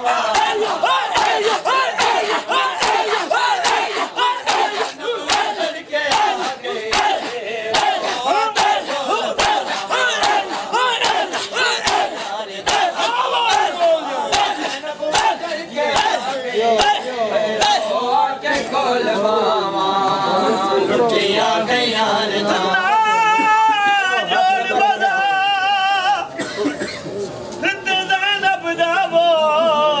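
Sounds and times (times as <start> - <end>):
crowd of men chanting: 0.0 - 26.2
hands slapping chests: 0.3 - 8.8, 9.4 - 16.2.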